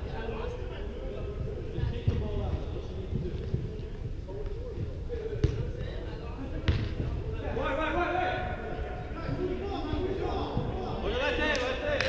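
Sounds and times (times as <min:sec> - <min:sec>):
soccer ball kicked: 0:01.8 - 0:03.8, 0:04.8 - 0:05.9, 0:06.6 - 0:07.3.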